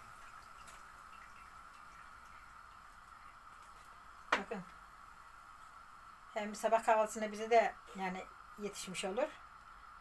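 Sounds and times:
dough frying in hot oil: 0.0 - 10.0.

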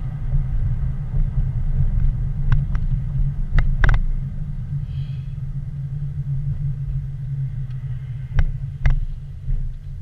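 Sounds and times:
car road and engine rumble: 0.0 - 10.0.

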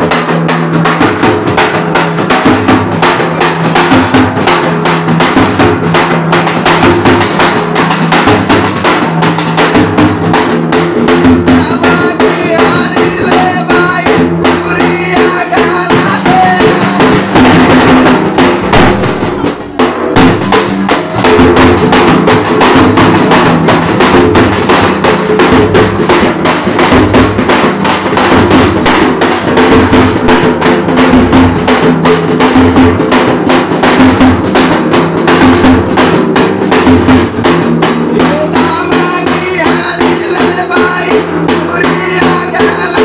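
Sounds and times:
drums beaten fast with sticks: 0.0 - 43.0.

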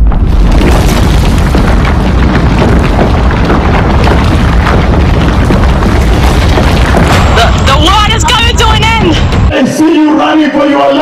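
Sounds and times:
deep earthquake rumble: 0.0 - 9.5
objects crashing and rattling: 0.0 - 9.5.

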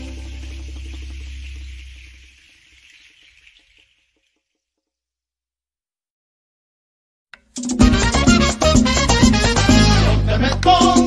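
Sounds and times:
recorded song: 0.0 - 1.7, 7.4 - 11.0.

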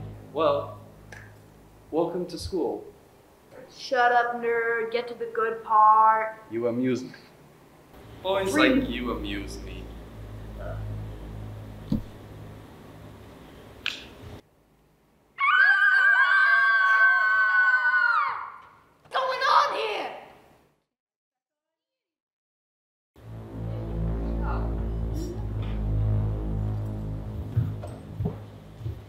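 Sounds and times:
low droning background music: 0.0 - 2.2, 8.0 - 14.4, 23.2 - 29.0
high-pitched wavering shriek: 8.0 - 13.8, 23.2 - 28.9.

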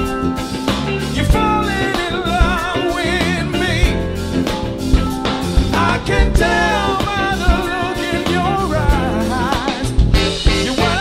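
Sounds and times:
bass drum hits: 0.0 - 11.0
soul band playing: 0.0 - 11.0.

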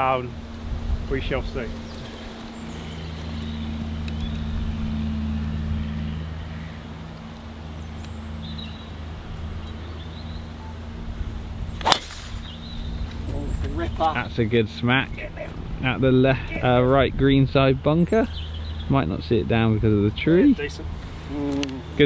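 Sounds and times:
distant engine drone: 0.0 - 22.0
golf driver striking ball: 11.8 - 12.6.

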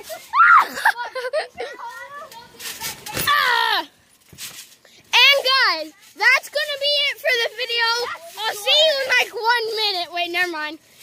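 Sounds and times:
children yelling: 0.0 - 3.9.

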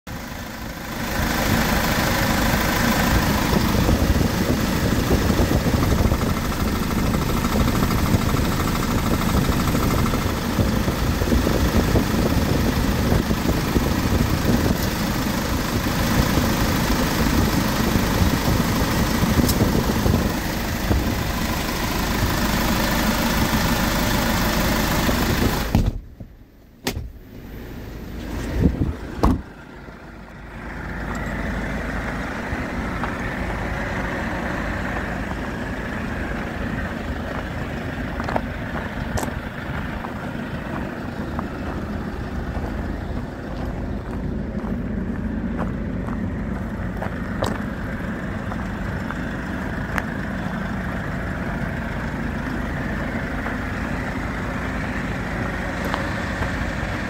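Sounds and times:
diesel engine idling: 0.1 - 57.0.

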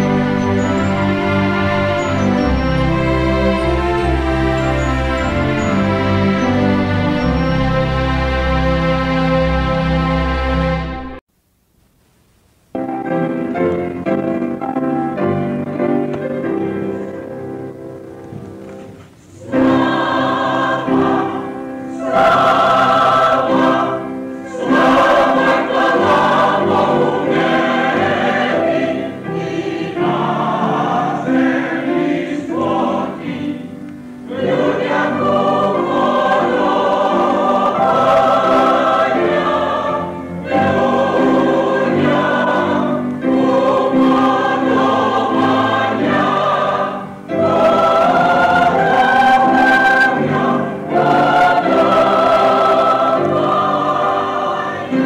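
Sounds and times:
mixed choir singing in harmony: 0.0 - 11.2, 15.0 - 17.8, 19.3 - 55.0.

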